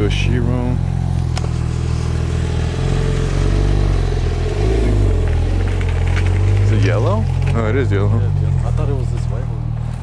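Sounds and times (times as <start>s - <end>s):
car engine running at low speed: 0.0s - 10.0s.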